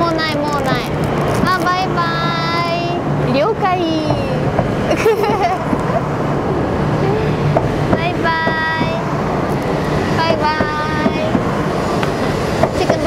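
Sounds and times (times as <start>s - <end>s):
train rolling rumble: 0.0s - 13.0s.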